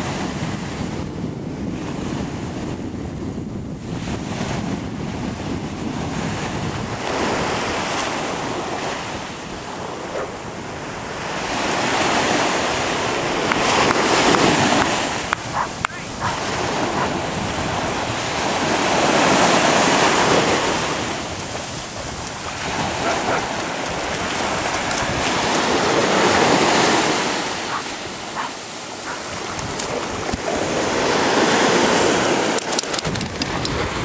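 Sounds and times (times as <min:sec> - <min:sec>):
wind on microphone: 0:00.0 - 0:34.0
ocean surf washing in and out: 0:03.6 - 0:34.0.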